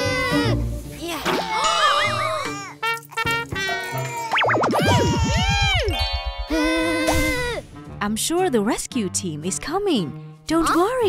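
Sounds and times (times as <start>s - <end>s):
cartoon music: 1.2s - 7.7s.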